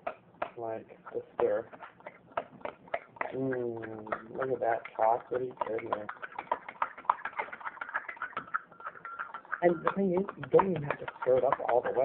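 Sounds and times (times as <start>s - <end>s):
spoon clinking against glass: 8.0s - 12.0s.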